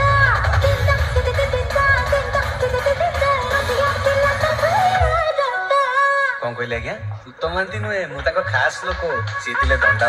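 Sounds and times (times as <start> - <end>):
heavy bass beat: 0.0 - 5.3, 7.0 - 10.0.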